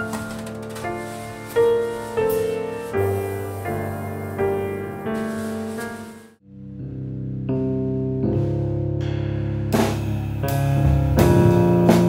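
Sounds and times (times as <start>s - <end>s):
keyboard chords over low bass: 6.4s - 12.0s.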